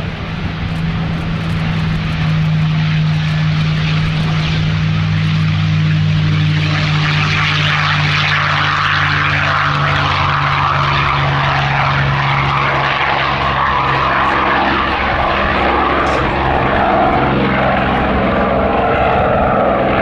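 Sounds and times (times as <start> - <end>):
propeller plane engine roaring: 0.0 - 20.0.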